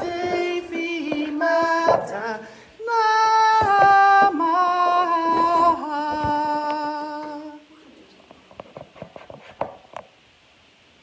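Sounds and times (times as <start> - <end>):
children singing a long note: 0.0 - 7.7.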